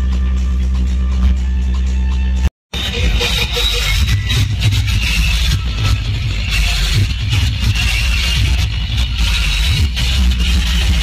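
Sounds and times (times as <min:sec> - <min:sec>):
bass-heavy dance music: 0:00.0 - 0:11.0.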